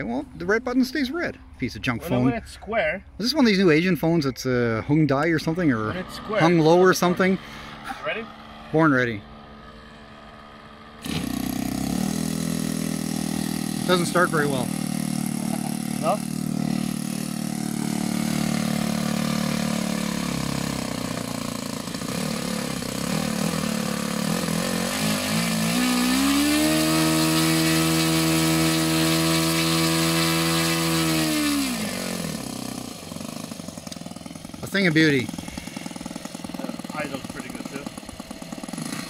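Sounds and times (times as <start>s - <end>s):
model airplane engine running: 5.4s - 39.0s.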